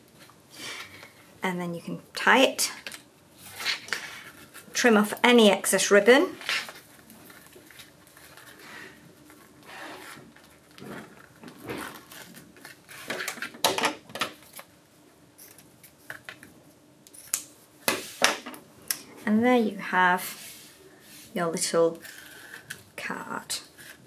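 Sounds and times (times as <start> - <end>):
ribbon and card rustling: 3.5 - 13.5.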